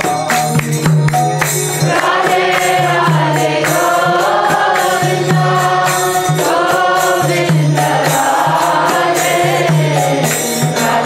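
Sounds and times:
struck percussion beat: 0.0s - 11.0s
group chanting to music: 1.7s - 11.0s.

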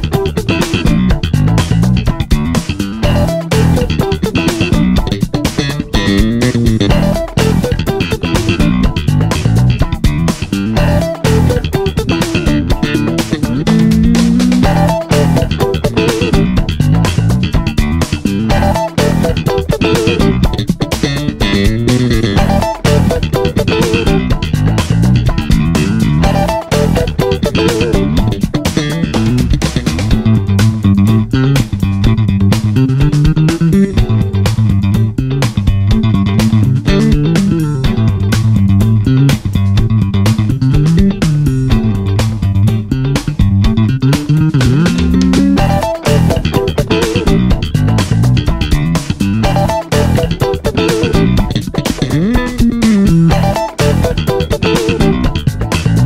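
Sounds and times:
slap bass funk line: 0.0s - 56.0s.

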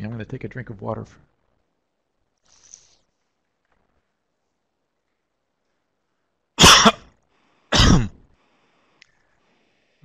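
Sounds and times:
man coughing: 6.6s - 7.1s, 7.7s - 8.2s.

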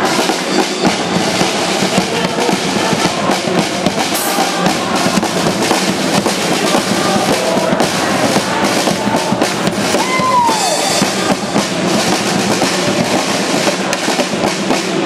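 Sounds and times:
live band with drums: 0.0s - 15.0s.

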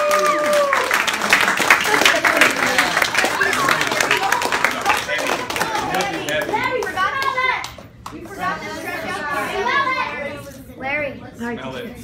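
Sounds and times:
people clapping: 0.0s - 8.8s.

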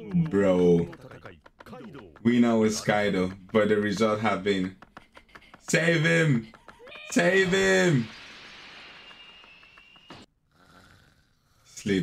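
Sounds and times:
person snoring softly: 10.5s - 11.9s.

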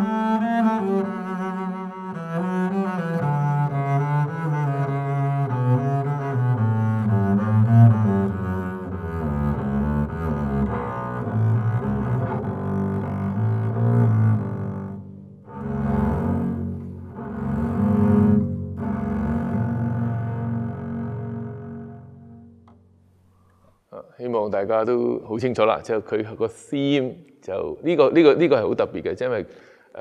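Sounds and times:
bowed double bass: 0.0s - 23.6s.

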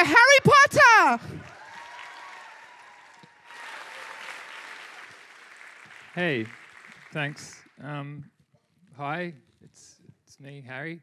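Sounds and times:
audience applauding: 1.2s - 8.0s.

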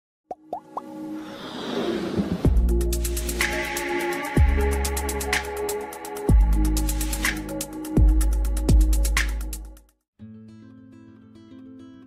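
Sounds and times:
rising plopping pops: 0.3s - 0.9s.

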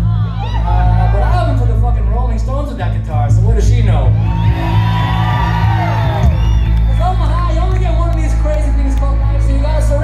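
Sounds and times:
crowd whooping: 0.0s - 2.1s, 4.0s - 10.0s
heavy low bass drone: 0.0s - 10.0s
live rock band playing: 0.0s - 10.0s.

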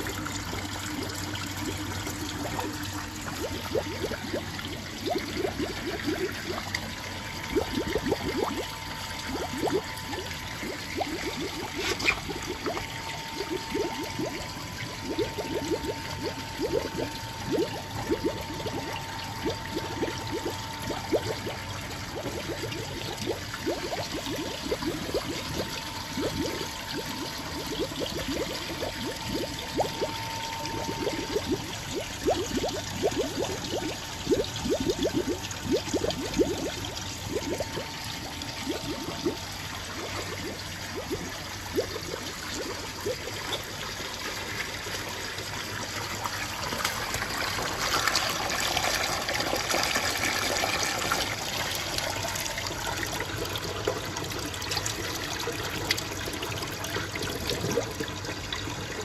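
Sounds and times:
water gurgling and bubbling: 0.0s - 59.0s
water pouring into plastic tubs: 0.0s - 59.0s.

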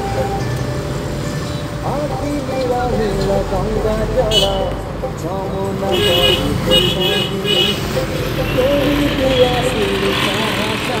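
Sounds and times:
car engine and road noise: 0.0s - 11.0s
car horn toot: 4.3s - 4.8s, 5.8s - 9.9s.

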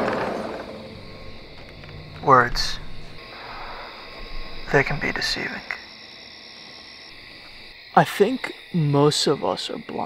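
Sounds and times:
sliding glass door rolling open: 0.0s - 4.8s
low steady hiss: 0.9s - 10.0s.

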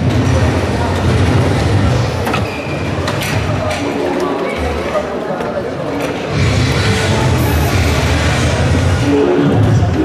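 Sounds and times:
crowd murmur in a hall: 0.0s - 10.0s.

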